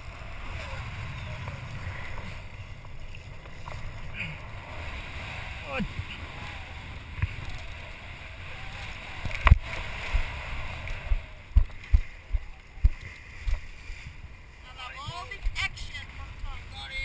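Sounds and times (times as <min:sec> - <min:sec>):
wind on microphone: 0:00.0 - 0:14.4
sea water rushing: 0:00.0 - 0:17.0.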